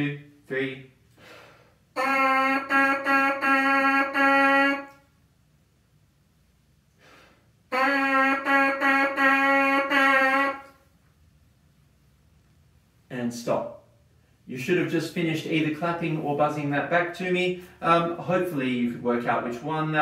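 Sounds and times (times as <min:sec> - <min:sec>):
trumpet mouthpiece buzzing: 0:01.3 - 0:05.2, 0:07.0 - 0:10.9.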